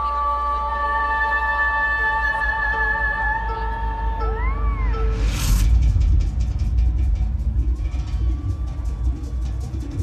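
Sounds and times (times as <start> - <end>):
rising whoosh: 4.8 - 8.0.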